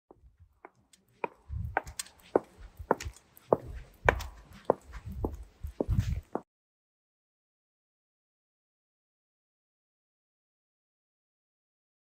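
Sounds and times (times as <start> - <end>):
footsteps on stone floor: 0.1 - 6.5.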